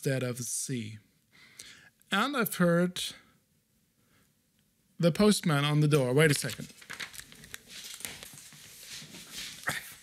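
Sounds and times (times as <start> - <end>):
faint rustling: 6.4 - 10.0.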